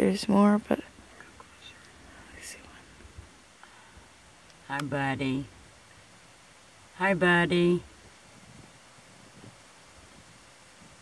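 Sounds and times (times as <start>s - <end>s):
soft hiss: 0.0s - 11.0s
faint whispering: 1.1s - 3.0s.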